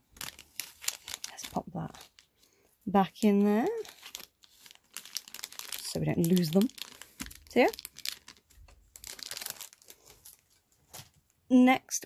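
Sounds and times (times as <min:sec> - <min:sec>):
plastic packet crinkling: 0:00.0 - 0:02.4, 0:03.0 - 0:11.2.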